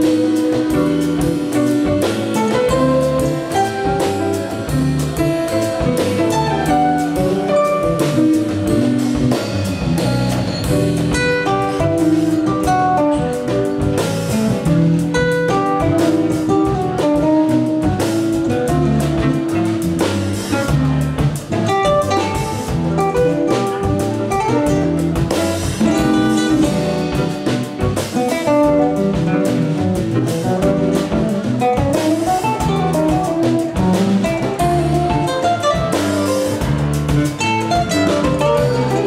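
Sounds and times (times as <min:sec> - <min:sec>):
drum kit and cymbals: 0:00.0 - 0:39.0
piano playing: 0:00.0 - 0:39.0.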